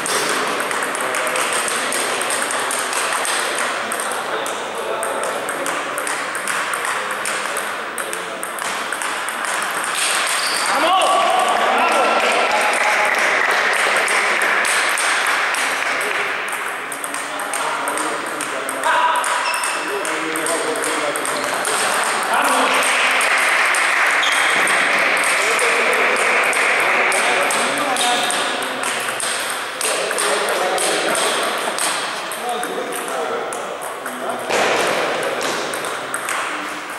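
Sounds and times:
table tennis ball clicks: 0.0s - 12.3s, 13.5s - 36.7s.

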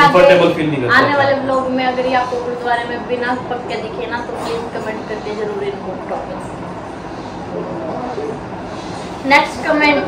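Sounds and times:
ceiling fan whirring: 0.0s - 10.0s.

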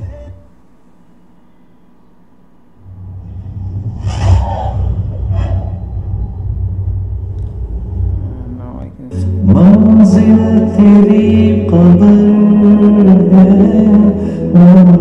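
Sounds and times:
whooshes: 2.8s - 8.8s
deep cinematic rumble: 2.8s - 14.0s.

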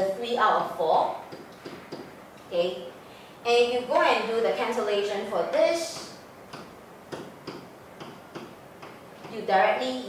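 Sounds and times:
stylus tapping on whiteboard: 1.3s - 2.2s, 5.9s - 9.4s.

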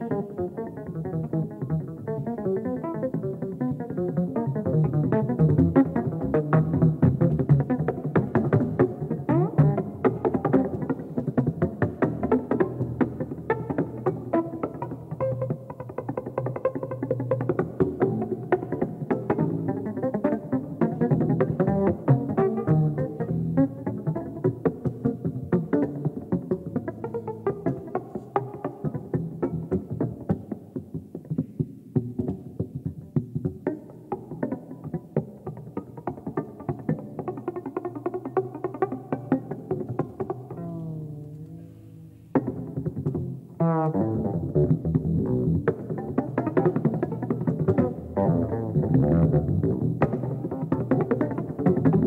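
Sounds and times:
plucked electric upright bass: 0.4s - 41.7s, 42.3s - 52.0s
live jazz music: 16.6s - 30.4s, 38.8s - 52.0s.

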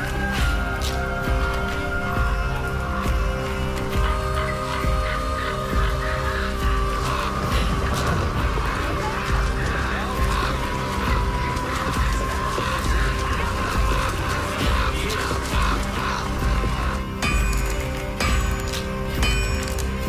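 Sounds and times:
background music with held notes: 0.0s - 20.0s.

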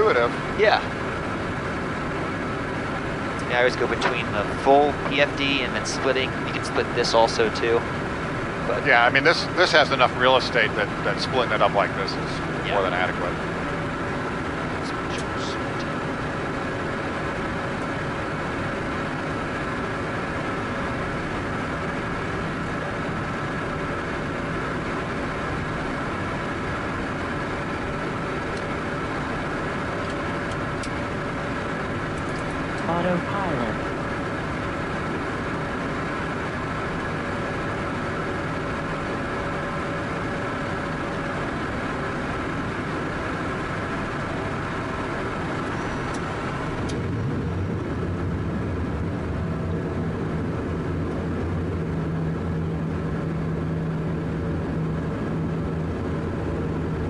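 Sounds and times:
jet engine and airflow noise: 0.0s - 57.0s.

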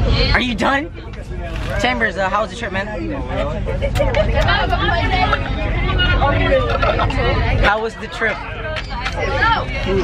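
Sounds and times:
bus engine rumble: 0.0s - 10.0s
road noise: 0.0s - 10.0s
young people chattering: 0.0s - 10.0s.

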